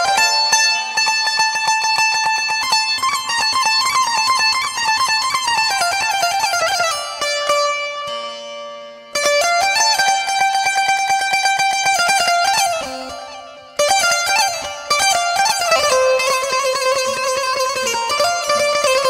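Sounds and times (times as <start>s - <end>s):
plucked string instrument melody: 0.0s - 19.0s.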